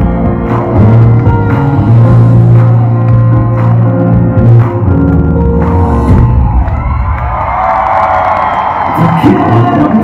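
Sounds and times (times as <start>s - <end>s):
audience cheering and screaming: 5.8s - 10.0s.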